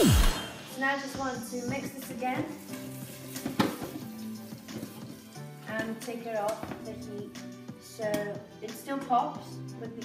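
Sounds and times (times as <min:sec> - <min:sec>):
background music with steady tones: 0:00.0 - 0:10.0.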